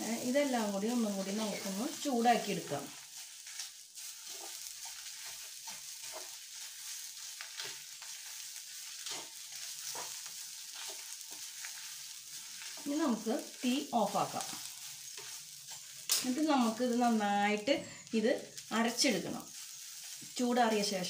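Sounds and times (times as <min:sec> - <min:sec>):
spatula scraping a pan: 0:00.0 - 0:17.2, 0:17.8 - 0:21.0
coconut sizzling in a pan: 0:00.0 - 0:21.0.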